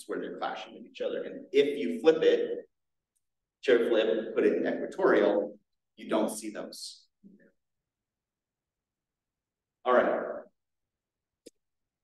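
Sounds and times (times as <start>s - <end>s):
man speaking: 0.0s - 2.7s, 3.6s - 7.1s, 9.8s - 10.6s.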